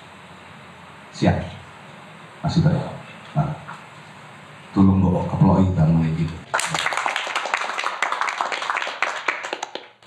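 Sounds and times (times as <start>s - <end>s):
audience applauding: 6.5s - 10.0s.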